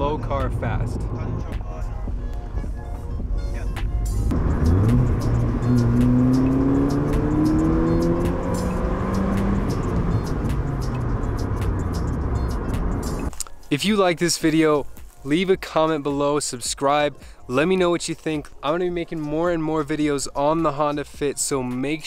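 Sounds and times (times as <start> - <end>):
background music with steady beat: 0.0 - 22.0
car engine accelerating: 4.3 - 13.3.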